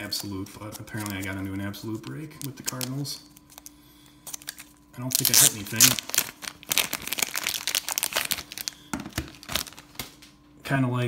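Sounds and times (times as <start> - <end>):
plastic card sleeves crinkling: 0.0 - 10.3.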